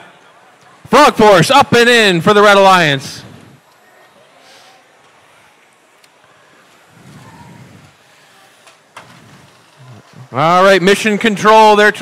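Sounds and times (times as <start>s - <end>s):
arena background noise: 0.0s - 12.0s.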